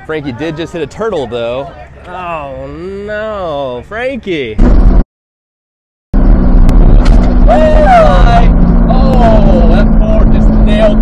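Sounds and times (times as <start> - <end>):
road noise: 0.0 - 5.0, 6.2 - 11.0
car engine drone: 4.6 - 5.0, 6.2 - 11.0
voices exclaiming: 7.5 - 9.9.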